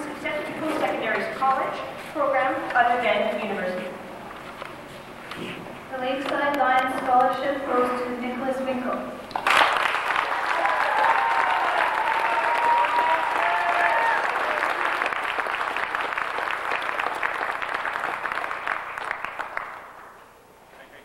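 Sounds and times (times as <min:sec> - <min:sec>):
audience applauding: 0:09.4 - 0:20.2
people cheering: 0:09.6 - 0:19.6.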